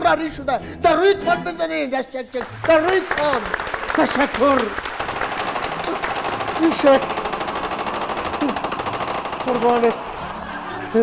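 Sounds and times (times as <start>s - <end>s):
automatic rifle fire: 4.8s - 10.5s.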